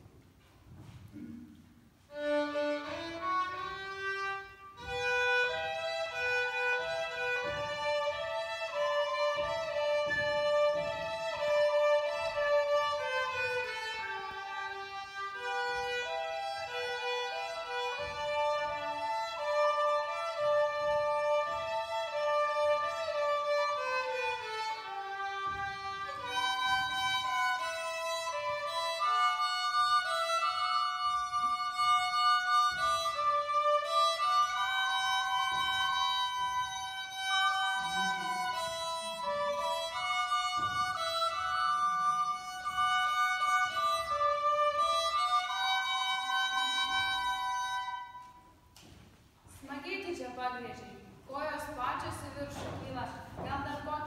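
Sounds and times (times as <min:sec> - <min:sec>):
bowed violin melody: 0:02.0 - 0:48.9.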